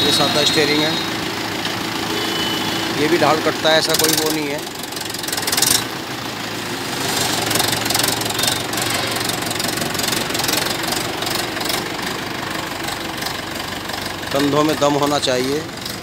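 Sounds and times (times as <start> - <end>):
tractor diesel engine running: 0.0 - 16.0.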